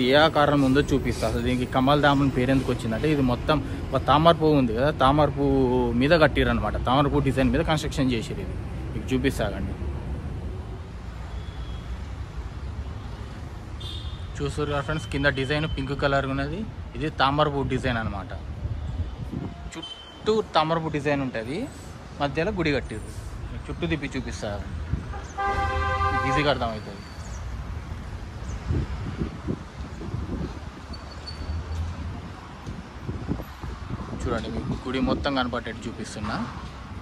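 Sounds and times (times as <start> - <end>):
horn toot: 25.1 - 26.8.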